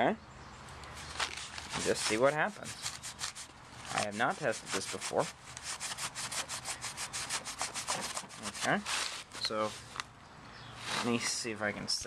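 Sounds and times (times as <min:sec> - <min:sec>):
paper towel scrubbing sack: 0:01.0 - 0:10.0, 0:10.8 - 0:11.4.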